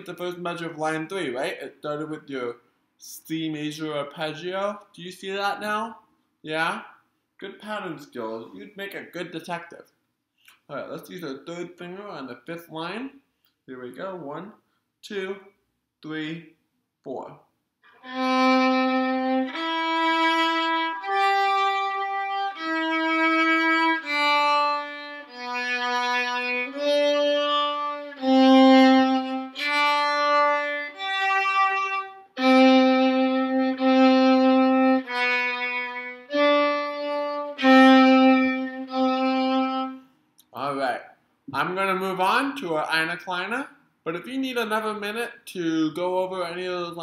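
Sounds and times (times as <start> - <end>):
solo violin bowed notes: 17.9 - 40.0.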